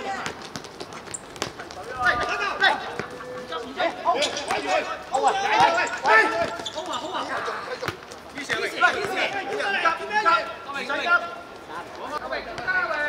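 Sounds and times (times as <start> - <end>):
players shouting: 1.6 - 13.0.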